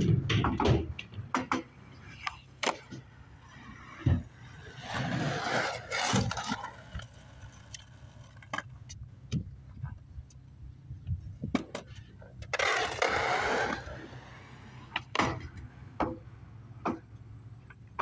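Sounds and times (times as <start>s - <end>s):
skateboard wheels rolling on concrete: 0.0s - 18.0s.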